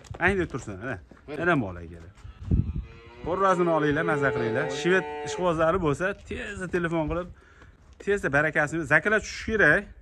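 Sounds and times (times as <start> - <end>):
cow mooing: 2.8 - 5.5.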